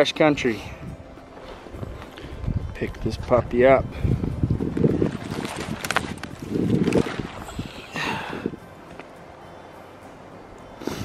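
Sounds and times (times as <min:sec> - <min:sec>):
wind buffeting microphone: 0:00.6 - 0:08.8.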